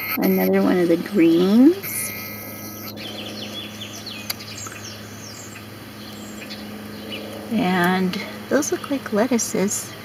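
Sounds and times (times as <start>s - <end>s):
birds chirping: 0.0s - 10.0s
steady low hum: 0.0s - 10.0s.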